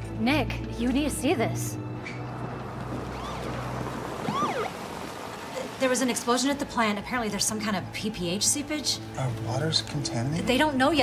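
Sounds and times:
police siren whoops: 4.2s - 4.8s.

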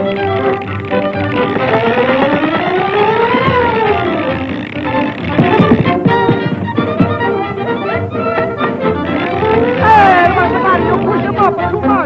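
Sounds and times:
cartoon orchestral music: 0.0s - 12.0s.

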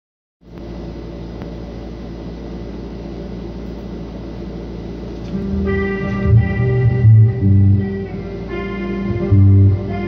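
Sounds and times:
amplifier electrical hum with hiss: 0.4s - 10.0s.

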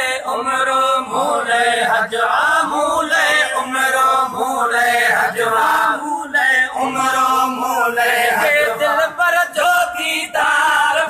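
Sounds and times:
men chanting unaccompanied: 0.0s - 11.0s.

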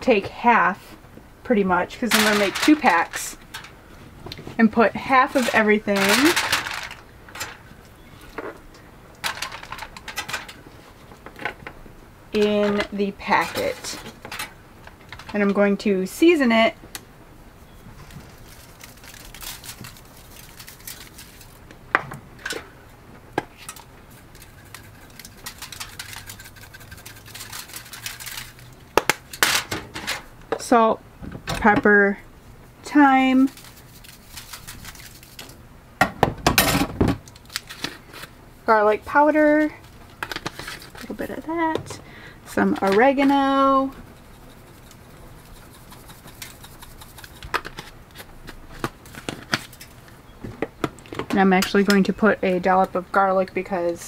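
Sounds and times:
faint steady hum: 0.0s - 54.0s
spice shakers rattling: 24.1s - 28.7s, 44.0s - 47.6s.

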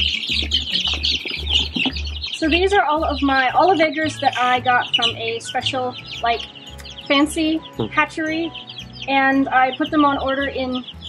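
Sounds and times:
background music with low beat: 0.0s - 11.0s
chicks peeping: 0.0s - 11.0s.

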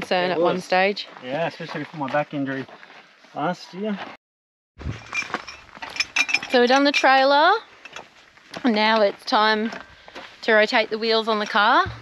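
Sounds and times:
metallic clinks of tools: 5.0s - 7.1s
low thump: 11.8s - 12.0s.

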